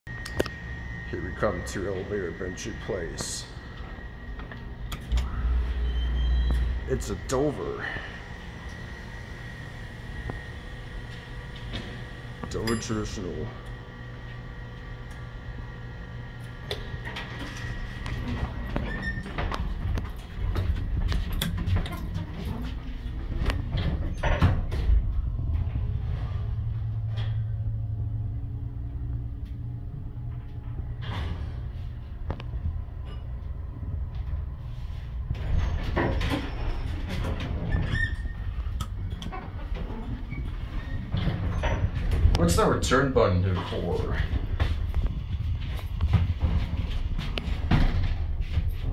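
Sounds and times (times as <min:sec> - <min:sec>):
hydraulic machine humming: 0:00.1 - 0:48.9
elevator door sliding: 0:01.4 - 0:12.4, 0:16.4 - 0:29.6, 0:34.5 - 0:48.9.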